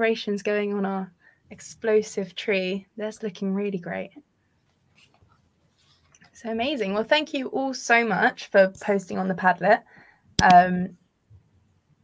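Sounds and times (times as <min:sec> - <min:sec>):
woman speaking: 0:00.0 - 0:04.2, 0:06.4 - 0:09.8, 0:10.4 - 0:10.9.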